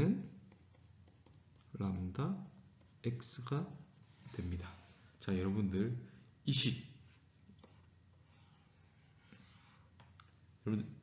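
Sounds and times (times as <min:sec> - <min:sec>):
man talking: 0:00.0 - 0:00.4, 0:01.7 - 0:07.0, 0:10.6 - 0:11.0.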